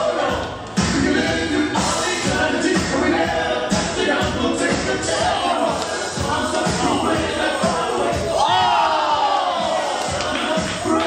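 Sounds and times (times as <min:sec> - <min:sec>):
dance music with steady beat: 0:00.0 - 0:11.0.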